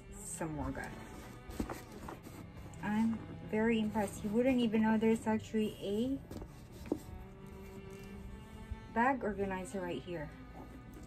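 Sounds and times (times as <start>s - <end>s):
woman speaking: 0.0s - 1.2s, 2.8s - 6.4s, 8.9s - 10.4s
soft background music: 0.0s - 11.0s.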